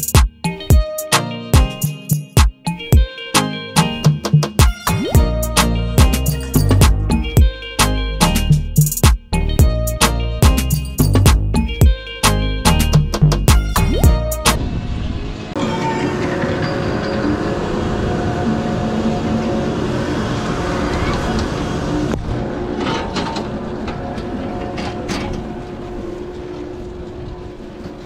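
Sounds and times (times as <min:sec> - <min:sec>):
loud rhythmic music: 0:00.0 - 0:14.6
chairlift machine hum: 0:14.8 - 0:28.0.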